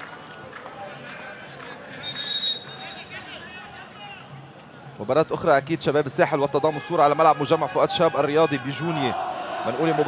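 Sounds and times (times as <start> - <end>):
short high whistle: 2.0 - 3.1.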